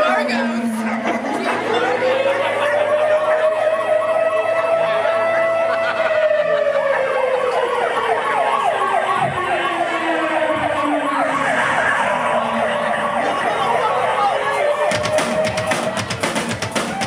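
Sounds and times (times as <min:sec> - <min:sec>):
siren wailing and yelping: 0:00.0 - 0:16.2.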